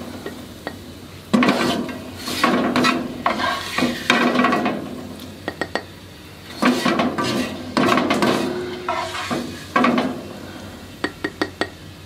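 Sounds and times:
light sizzle: 0:00.0 - 0:12.0
spatula scraping a wok: 0:01.4 - 0:04.4, 0:06.5 - 0:10.6.

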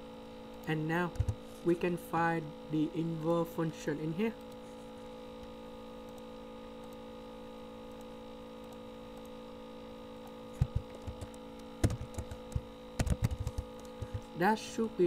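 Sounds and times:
steady hum: 0:00.0 - 0:15.0
computer keyboard clicks: 0:10.6 - 0:14.2.

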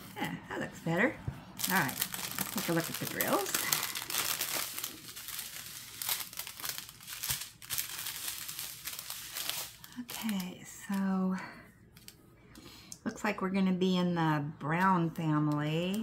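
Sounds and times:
plastic strip crinkling: 0:01.6 - 0:11.1.

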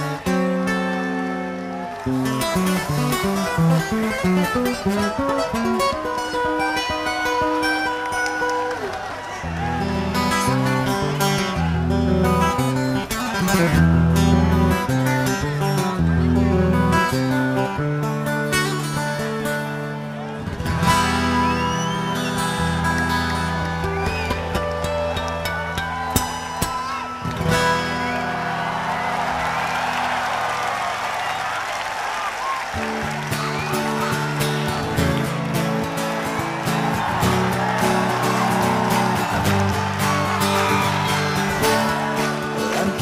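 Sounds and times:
crowd noise: 0:00.0 - 0:43.0.

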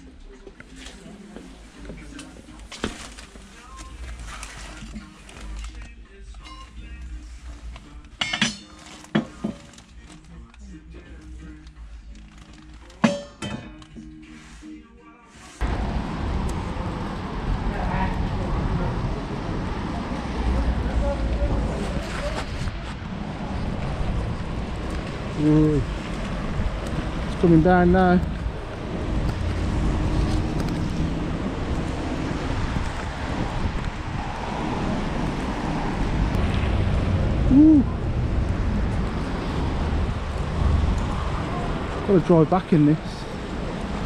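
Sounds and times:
background music: 0:00.0 - 0:17.8
metal saucepans clinking: 0:08.2 - 0:09.7, 0:13.0 - 0:13.8
wind on microphone: 0:28.4 - 0:42.0.

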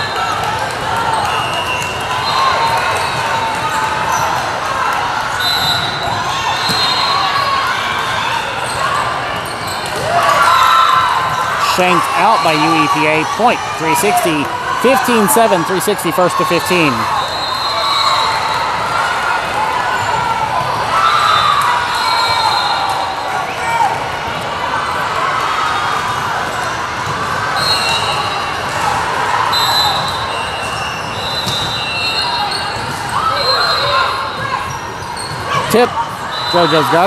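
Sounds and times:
people chattering in echoing hall: 0:00.0 - 0:37.0.

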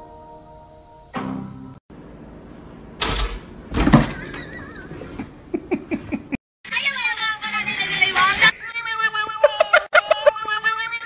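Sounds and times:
woman laughing: 0:04.3 - 0:06.4, 0:09.2 - 0:10.7.

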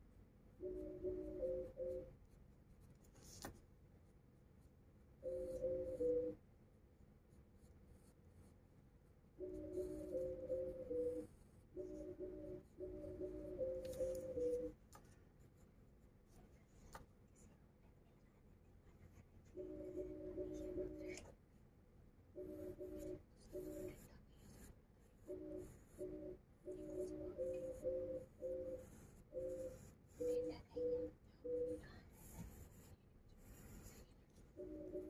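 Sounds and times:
pencil scratching on paper: 0:00.6 - 0:06.3, 0:07.5 - 0:17.4, 0:22.4 - 0:35.0.

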